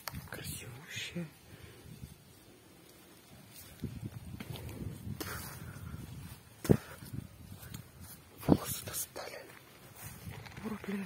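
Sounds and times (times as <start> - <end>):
rustling through grass: 0.1 - 11.0
footsteps in grass: 1.7 - 11.0.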